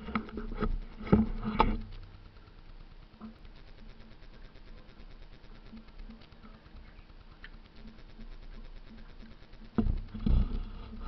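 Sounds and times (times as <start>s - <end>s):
knocks and scrapes on camera: 0.0s - 1.9s, 9.7s - 11.0s.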